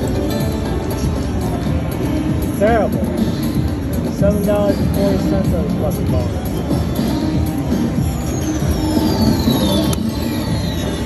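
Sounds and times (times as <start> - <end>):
casino machine and room noise: 0.0 - 11.0.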